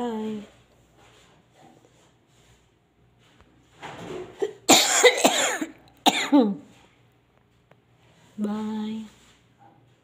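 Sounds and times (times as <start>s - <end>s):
parrot cough-like sound: 4.7s - 6.5s.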